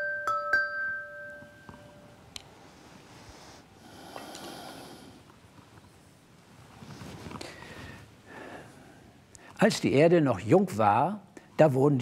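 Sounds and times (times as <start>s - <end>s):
metallophone notes ringing: 0.0s - 2.1s.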